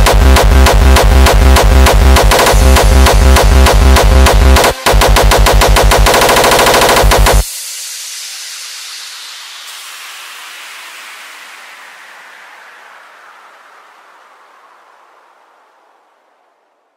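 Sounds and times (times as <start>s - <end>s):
heavy distorted kick drums: 0.0s - 7.5s
reverb hiss: 2.2s - 16.9s.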